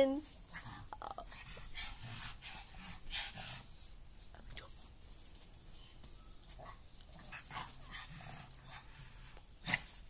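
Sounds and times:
dog panting: 0:00.3 - 0:04.8, 0:06.6 - 0:10.0.

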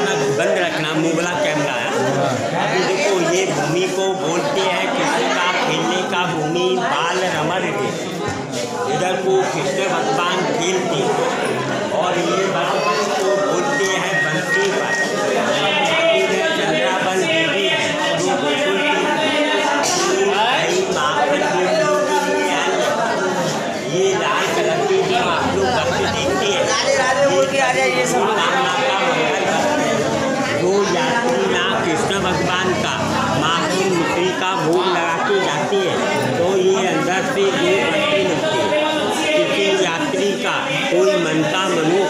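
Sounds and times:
chatter of voices: 0:00.0 - 0:42.0
man talking: 0:08.8 - 0:42.0.

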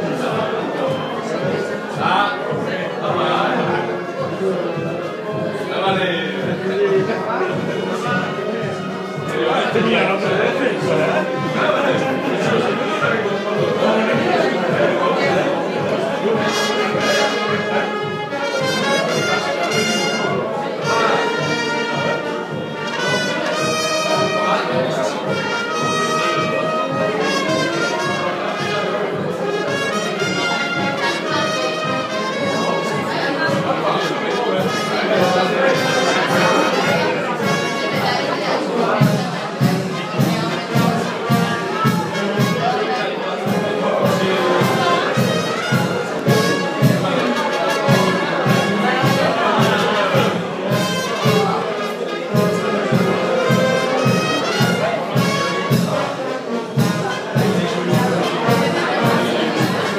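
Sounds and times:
brass band music: 0:00.0 - 0:59.9
regular drum beat: 0:34.6 - 0:42.7, 0:43.4 - 0:51.6, 0:52.3 - 0:59.9.

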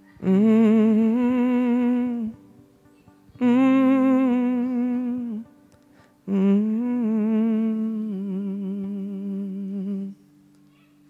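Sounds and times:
man humming with vibrato: 0:00.0 - 0:02.4, 0:03.4 - 0:05.5, 0:06.2 - 0:10.2.

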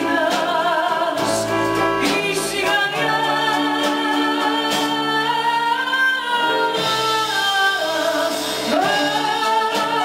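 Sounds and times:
band with piano and bouzouki: 0:00.0 - 0:10.0
woman singing: 0:00.0 - 0:10.0.

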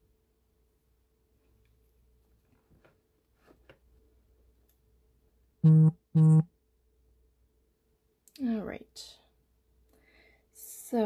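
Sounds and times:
phone vibrating buzz: 0:05.6 - 0:06.5.

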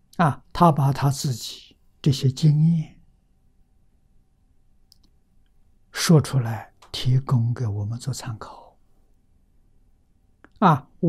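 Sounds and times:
thin steady hum: 0:00.0 - 0:11.0
soft clicks: 0:04.8 - 0:05.6.

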